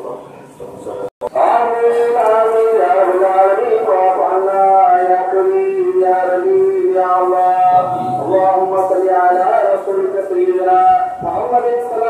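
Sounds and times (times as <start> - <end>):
man chanting prayer: 0.0 - 12.0
man reciting prayer: 0.0 - 12.0.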